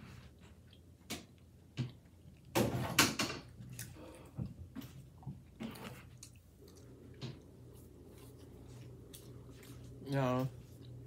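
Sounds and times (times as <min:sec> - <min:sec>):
person chewing food: 0:00.0 - 0:02.6, 0:03.4 - 0:11.0.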